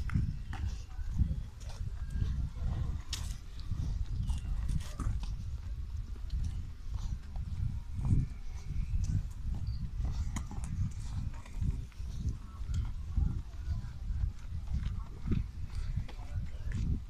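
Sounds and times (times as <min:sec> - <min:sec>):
footsteps on dirt path: 0:00.0 - 0:17.0.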